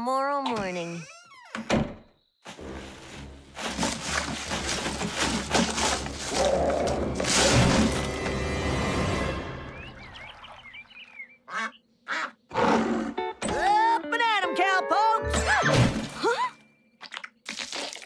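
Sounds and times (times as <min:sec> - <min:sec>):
cartoon scuffle knocks and crashes: 0:02.5 - 0:06.4, 0:07.2 - 0:08.2
music: 0:06.3 - 0:10.0, 0:13.1 - 0:15.7
duck quacks: 0:11.5 - 0:12.4.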